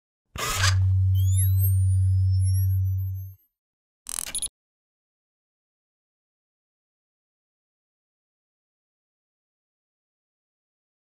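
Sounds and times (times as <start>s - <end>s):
low synth drone: 0.6s - 3.4s.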